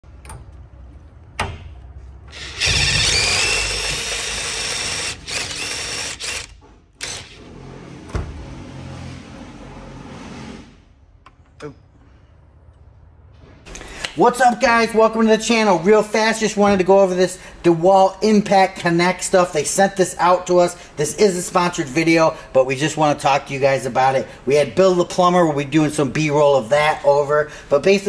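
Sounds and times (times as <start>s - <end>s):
impact driver motor whine: 2.3s - 7.4s
pipe cutter grinding: 2.3s - 7.6s.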